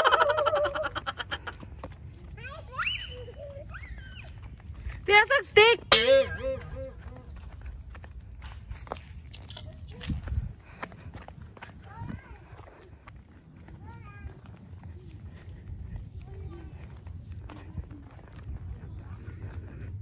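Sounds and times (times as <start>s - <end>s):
footsteps on concrete: 0.4s - 20.0s.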